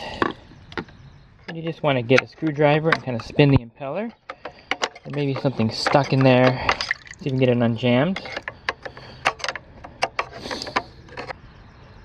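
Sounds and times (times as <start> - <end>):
water sloshing: 4.4 - 9.2.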